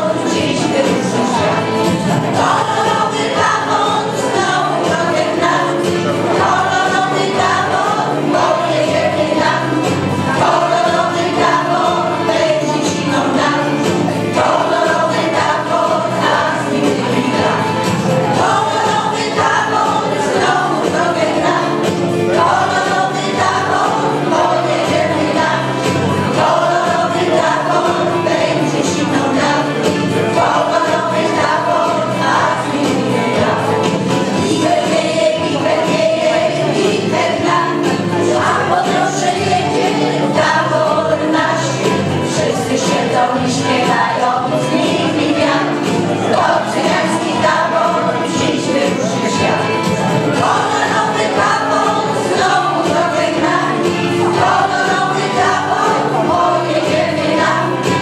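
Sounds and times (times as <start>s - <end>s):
women's choir singing folk song: 0.0s - 58.0s.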